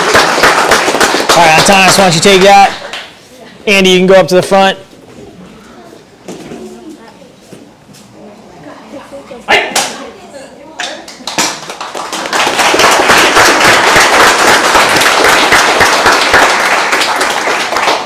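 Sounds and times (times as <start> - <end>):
crowd applauding: 0.0 - 3.1, 11.1 - 18.0.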